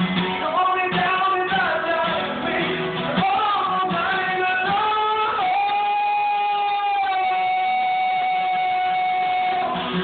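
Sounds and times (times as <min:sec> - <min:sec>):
acoustic guitar: 0:00.0 - 0:10.0
man singing a high held note: 0:03.2 - 0:09.8.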